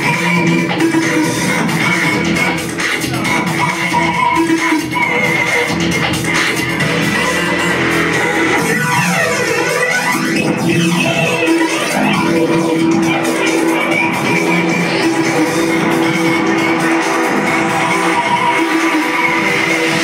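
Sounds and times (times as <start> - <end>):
breakbeat dance music: 0.0 - 20.0.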